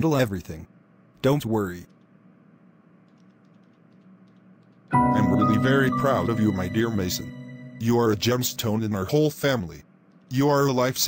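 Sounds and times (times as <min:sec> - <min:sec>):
faint low hum: 0:00.0 - 0:11.0
background music: 0:04.9 - 0:09.0
synthesized male voice: 0:04.9 - 0:09.7.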